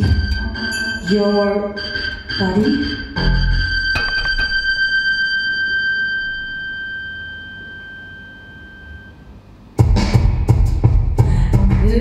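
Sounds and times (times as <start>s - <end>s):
high steady electronic tone: 0.0s - 9.3s
loud beat: 9.8s - 12.0s.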